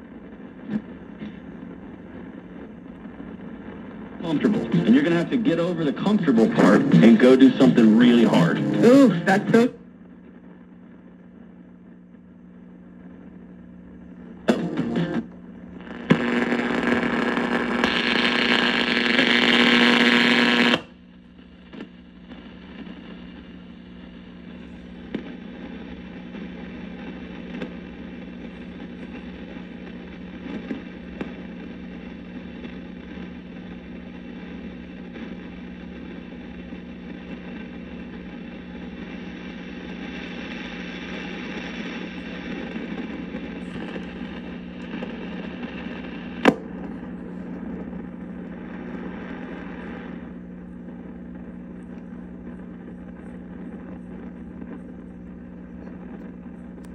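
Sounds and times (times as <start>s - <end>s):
radio static hiss: 0.0s - 56.9s
steady low hum: 0.0s - 56.9s
sharp pop: 46.4s - 47.1s.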